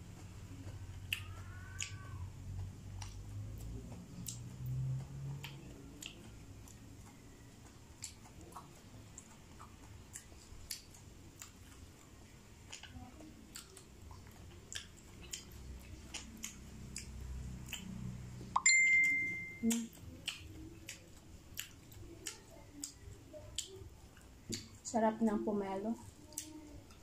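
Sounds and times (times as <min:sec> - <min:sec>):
chewing with mouth clicks: 0:00.0 - 0:24.9, 0:26.0 - 0:27.0
ringing ding: 0:18.6 - 0:19.7.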